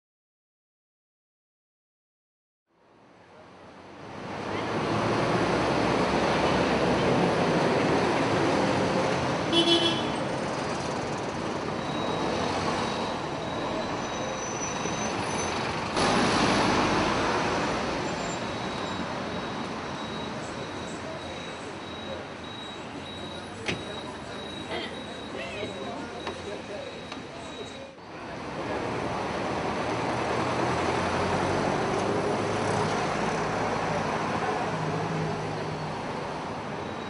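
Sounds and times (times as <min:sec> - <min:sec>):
street traffic: 0:02.7 - 0:37.0
horn toot: 0:09.5 - 0:10.2.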